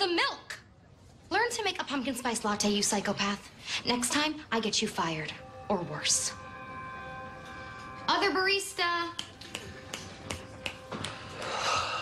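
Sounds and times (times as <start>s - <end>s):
background music drone: 3.1s - 12.0s.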